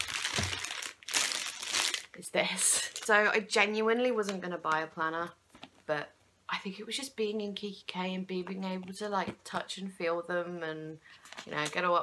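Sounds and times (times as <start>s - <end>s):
packaging crinkling and rustling: 0.0s - 2.2s.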